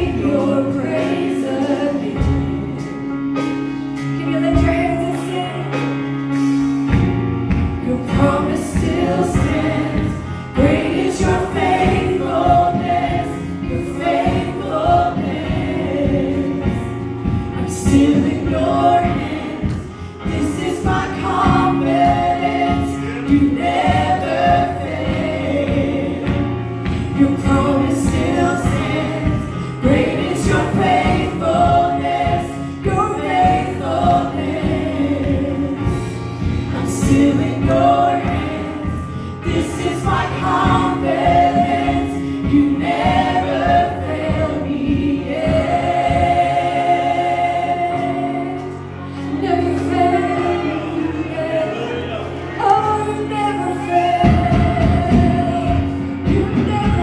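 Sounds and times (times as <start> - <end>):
women singing in harmony: 0.0 - 3.2, 4.2 - 6.0, 7.6 - 57.0
instrumental backing with beat: 0.0 - 51.6.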